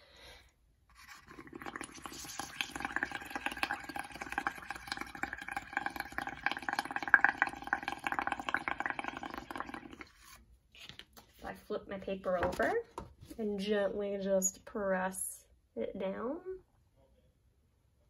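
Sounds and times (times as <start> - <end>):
bubbling through a straw: 0.9 - 10.4.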